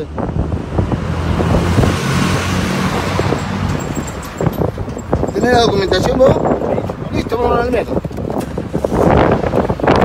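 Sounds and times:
vehicle passing close: 0.2s - 5.3s.

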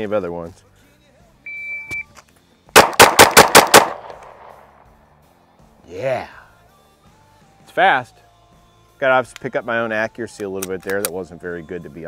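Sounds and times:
pistol shots with echo: 2.8s - 4.9s.

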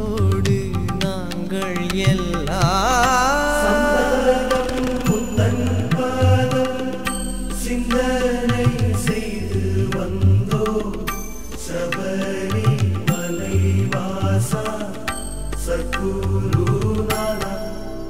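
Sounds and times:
devotional song melody: 0.0s - 18.0s.

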